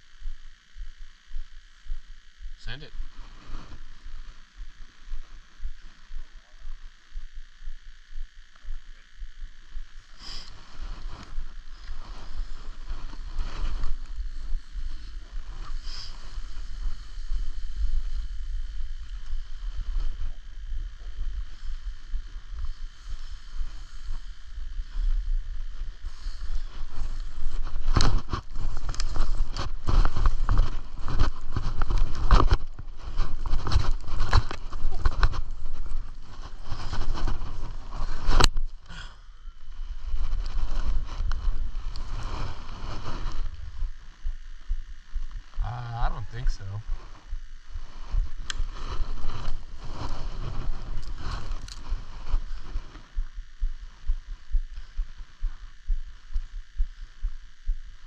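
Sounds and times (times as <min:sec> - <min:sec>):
skis hissing over snow: 0:10.2 - 0:18.4, 0:26.0 - 0:31.7, 0:42.0 - 0:43.5
wind rumble on microphone: 0:10.7 - 0:58.0
skis scraping over snow: 0:26.1 - 0:38.4, 0:40.0 - 0:43.8, 0:47.9 - 0:53.0.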